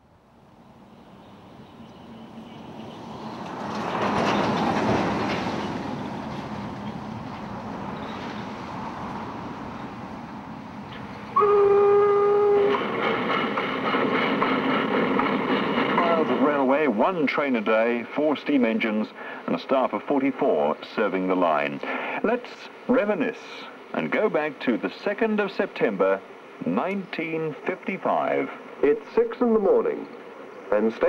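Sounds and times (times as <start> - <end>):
steam train rumble and clatter: 2.7 - 31.0
steam locomotive whistle: 11.4 - 13.2.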